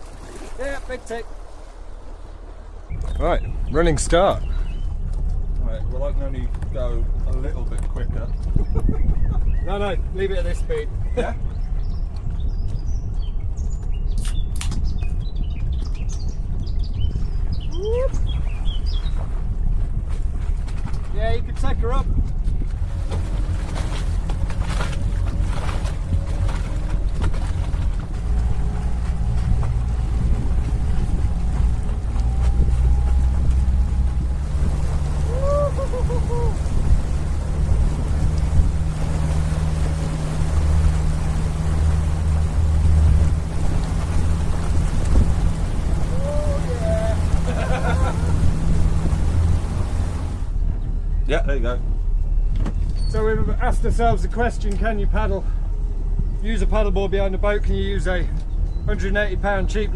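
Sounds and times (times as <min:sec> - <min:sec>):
wake rushing: 0:00.0 - 0:08.8, 0:16.9 - 0:50.7
motorboat engine drone: 0:00.0 - 0:21.1, 0:22.2 - 0:59.9
wind buffeting microphone: 0:00.0 - 0:59.9.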